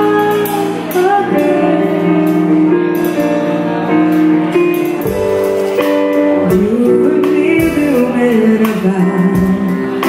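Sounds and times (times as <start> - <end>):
woman singing: 0.0 - 3.2, 6.3 - 10.0
drums and cymbals: 0.0 - 10.0
keyboard chords: 0.0 - 10.0.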